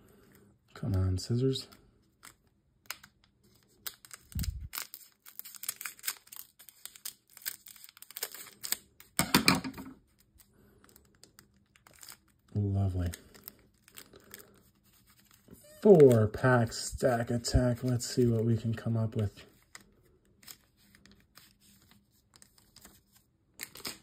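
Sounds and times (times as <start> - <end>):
foil wrappers crinkling and tearing: 2.2 - 9.2, 10.0 - 16.6, 19.6 - 24.0.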